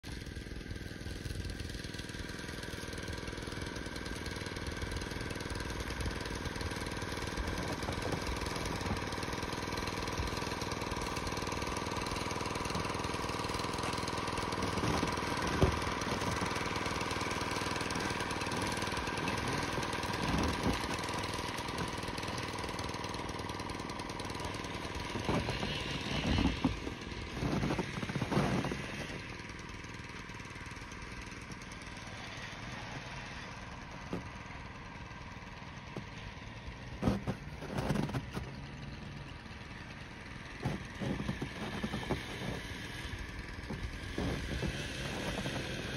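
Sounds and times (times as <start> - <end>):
engine hum with held tones: 0.0 - 45.9.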